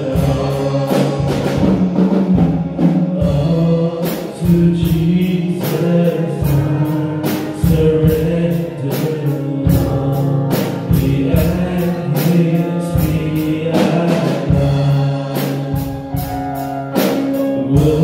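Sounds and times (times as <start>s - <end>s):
held bass notes: 0.0s - 18.0s
men singing a hymn in harmony: 0.0s - 18.0s
steady drum beat: 0.0s - 18.0s.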